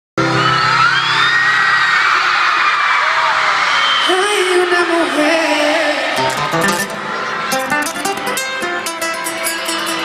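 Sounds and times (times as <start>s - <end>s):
crowd screaming and whooping: 0.2s - 10.0s
music over sound system: 6.2s - 10.0s.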